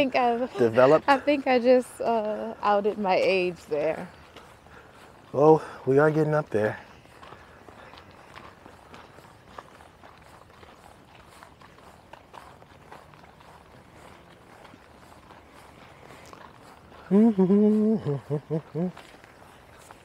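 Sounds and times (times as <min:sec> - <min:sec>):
footsteps on dirt trail: 0:00.0 - 0:20.0.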